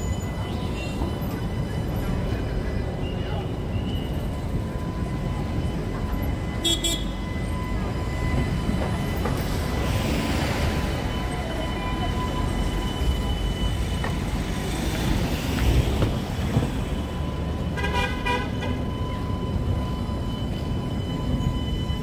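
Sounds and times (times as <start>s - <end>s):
tram rumbling and whining: 0.0s - 22.0s.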